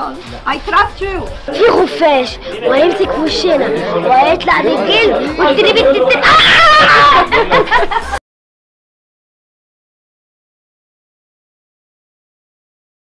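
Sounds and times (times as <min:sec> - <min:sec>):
music: 0:00.0 - 0:08.2
people talking at once: 0:00.0 - 0:08.2.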